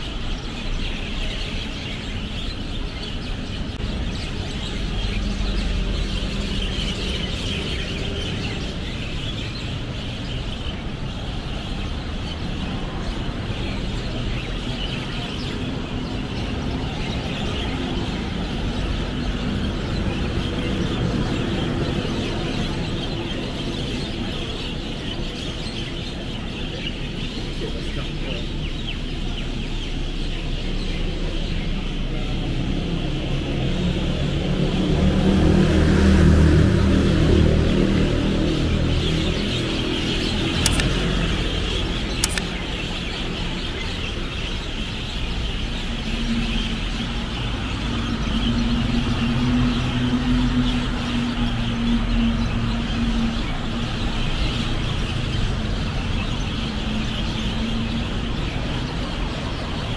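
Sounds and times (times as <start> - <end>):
buses and cars passing: 0.0 - 59.9
engine humming steadily: 39.8 - 42.8.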